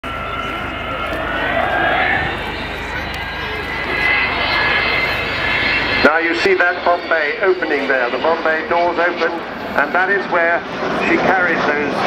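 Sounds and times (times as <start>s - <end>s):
high whining jet tones: 0.0s - 12.0s
loud jet roar: 0.0s - 12.0s.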